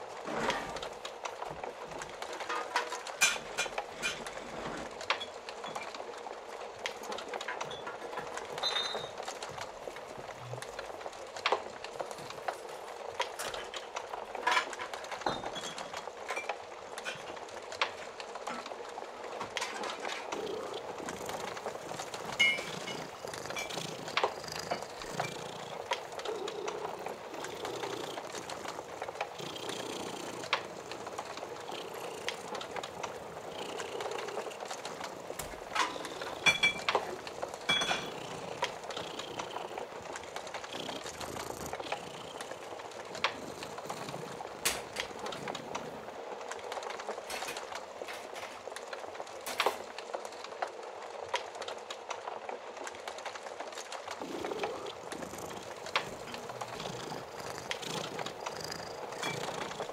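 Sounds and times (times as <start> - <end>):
cat purring: 0.0 - 51.2, 53.8 - 59.9
wood fire crackling: 0.0 - 59.9.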